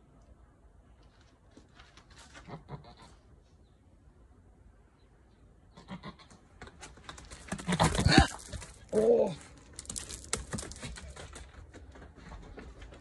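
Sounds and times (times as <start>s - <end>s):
goat bleating: 5.8s - 6.4s
scuffling and clicks: 6.6s - 13.0s.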